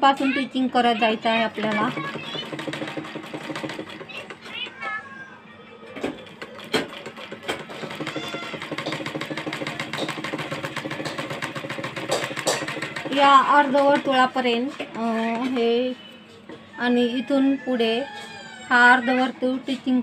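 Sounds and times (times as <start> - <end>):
sewing machine stitching: 1.4 - 4.7, 6.0 - 16.1
sewing machine clicks: 1.6 - 4.5, 6.0 - 14.2.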